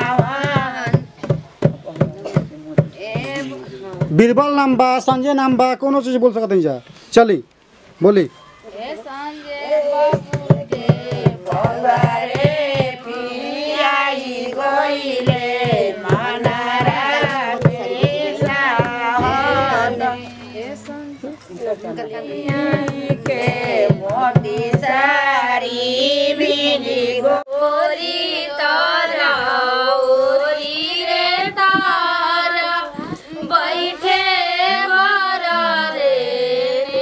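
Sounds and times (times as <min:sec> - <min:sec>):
women singing together: 0:00.0 - 0:01.2, 0:03.0 - 0:03.9, 0:08.8 - 0:37.0
hand drum beating: 0:15.2 - 0:21.3.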